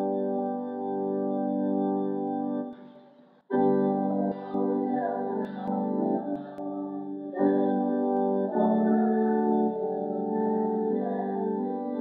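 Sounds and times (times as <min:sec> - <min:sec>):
organ playing a hymn: 0:00.0 - 0:02.8, 0:03.5 - 0:12.0.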